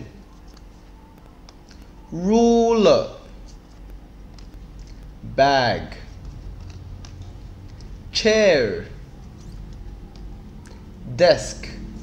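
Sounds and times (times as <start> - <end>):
paper cards ticking: 0.0 - 10.9
room hum: 0.0 - 12.0.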